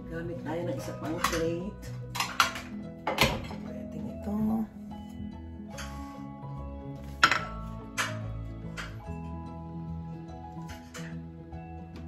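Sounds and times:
background music: 0.0 - 12.0
dishes clattering on countertop: 1.0 - 3.8, 7.2 - 9.0.

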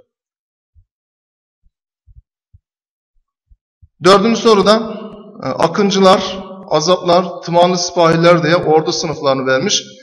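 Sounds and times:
faint dull low thumps: 0.7 - 1.0, 1.6 - 5.7.

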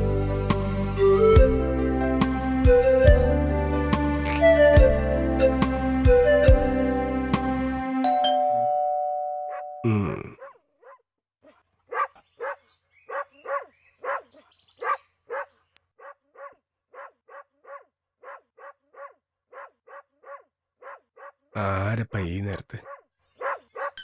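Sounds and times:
doorbell chime: 8.0 - 9.9
dog barking: 10.4 - 21.5, 22.8 - 24.0.

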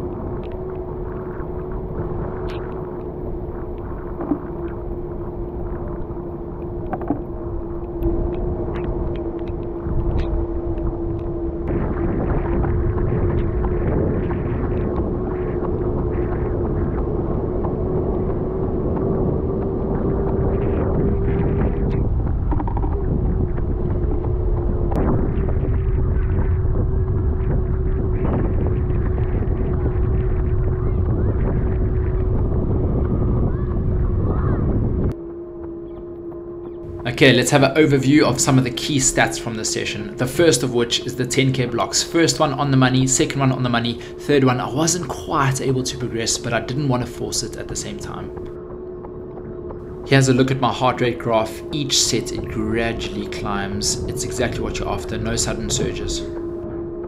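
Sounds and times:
wind and road noise rumbling: 0.0 - 57.0.

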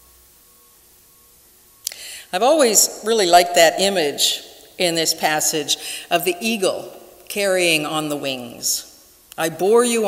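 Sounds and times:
faint hiss: 0.0 - 3.1
faint steady hum: 0.0 - 10.0.

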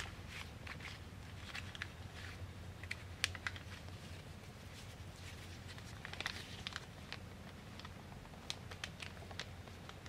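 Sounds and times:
foil pouch crinkling: 0.0 - 10.0.

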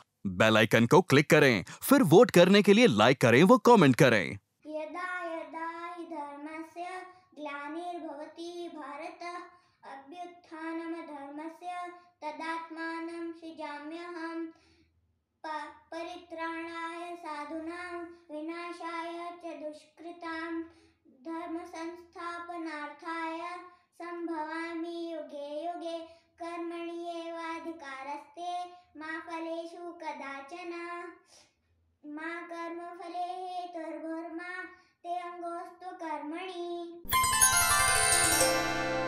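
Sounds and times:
breaths between phrases: 0.0 - 4.4, 14.5 - 14.9, 20.6 - 21.1, 34.7 - 35.0.

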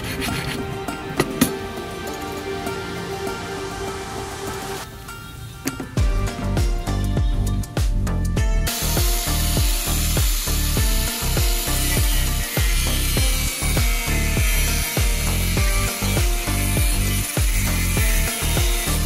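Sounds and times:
background music with beat: 0.0 - 19.0
angle grinder grinding: 8.7 - 19.0.

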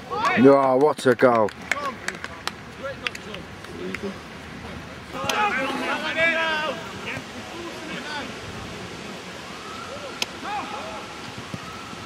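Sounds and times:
players shouting: 5.1 - 8.6, 9.4 - 12.0.

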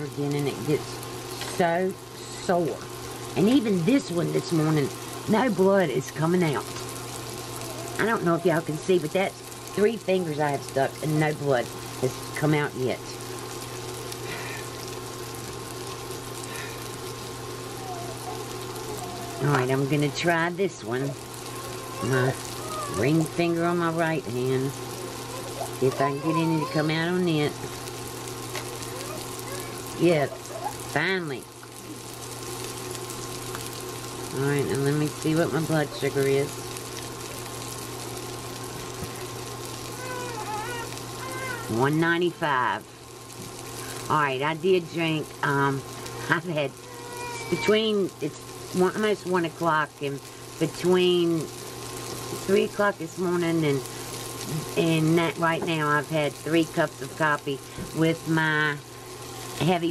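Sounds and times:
sausages sizzling in a pan: 0.0 - 59.9.

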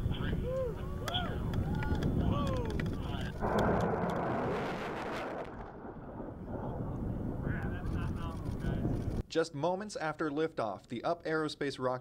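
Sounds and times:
rocket motor roaring with crackles: 1.8 - 9.2.

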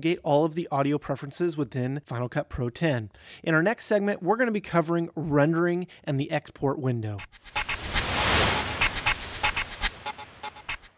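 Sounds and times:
noisy whoosh: 7.2 - 10.9
sharp electronic clicks: 7.2 - 10.9.

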